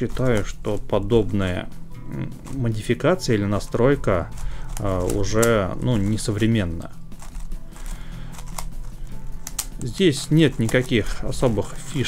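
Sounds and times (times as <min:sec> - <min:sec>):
plastic puzzle cube clicks: 0:04.3 - 0:05.6, 0:07.2 - 0:11.0.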